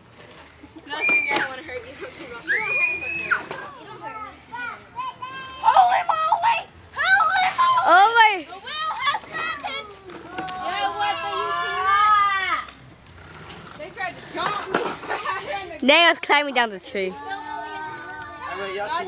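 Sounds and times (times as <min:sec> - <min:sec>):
children and adults yelling: 0:00.9 - 0:01.7, 0:02.3 - 0:12.7, 0:16.9 - 0:19.0.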